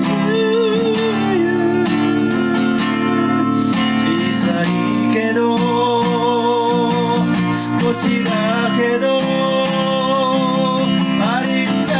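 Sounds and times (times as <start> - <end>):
acoustic guitar strummed chords: 0.0 - 11.9.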